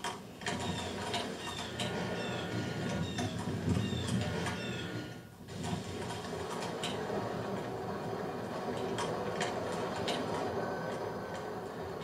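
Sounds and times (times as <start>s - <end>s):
falling high squeaks: 0.5s - 5.3s.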